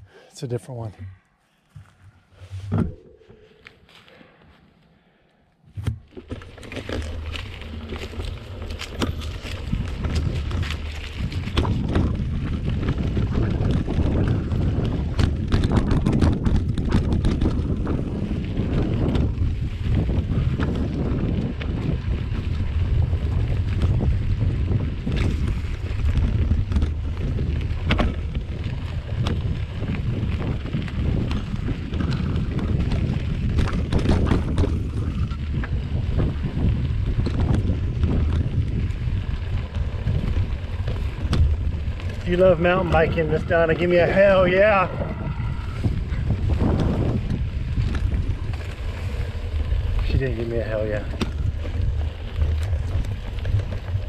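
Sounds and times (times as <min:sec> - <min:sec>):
bike tyre rumble: 0:01.6 - 0:54.0
bike rattling: 0:05.7 - 0:54.0
wind on microphone: 0:06.7 - 0:54.0.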